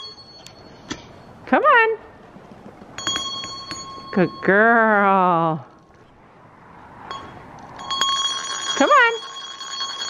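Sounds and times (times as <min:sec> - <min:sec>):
bell ringing in high tones: 0:00.0 - 0:01.4, 0:03.0 - 0:04.6, 0:07.1 - 0:10.0.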